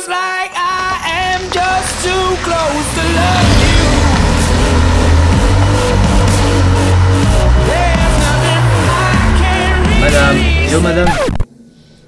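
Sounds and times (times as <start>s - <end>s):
car engine rumbling: 0.5s - 11.2s
music with sustained notes: 0.6s - 11.1s.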